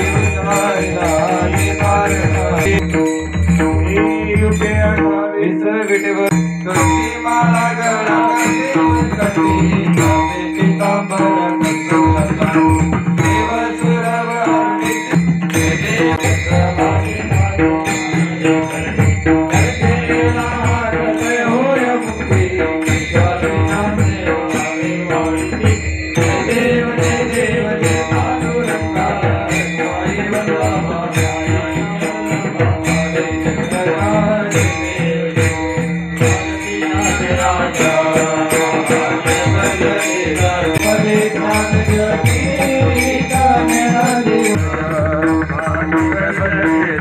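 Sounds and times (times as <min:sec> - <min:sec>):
steady drum beat: 0:00.0 - 0:05.0, 0:06.3 - 0:47.0
jingling percussion: 0:00.0 - 0:47.0
small hand cymbals: 0:05.8 - 0:46.8
chant-like singing: 0:19.5 - 0:45.4.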